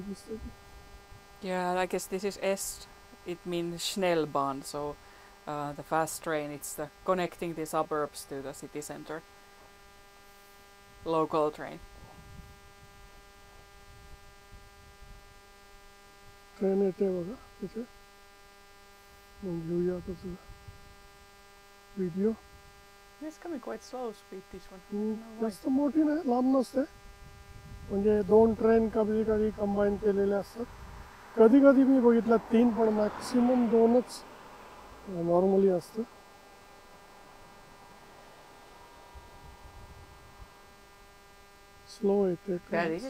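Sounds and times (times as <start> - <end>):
steady electrical hum: 0.0 - 43.0
faint low rumble: 26.8 - 41.9.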